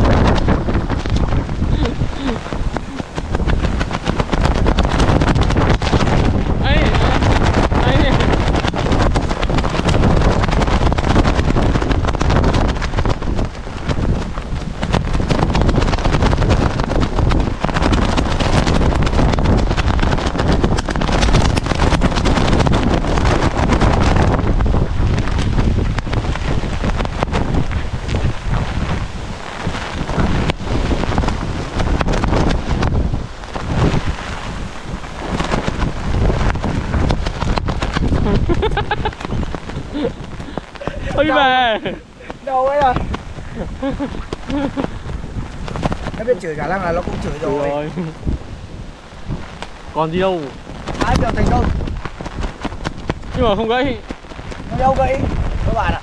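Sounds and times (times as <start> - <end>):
strong wind buffeting microphone: 0.0 - 56.0.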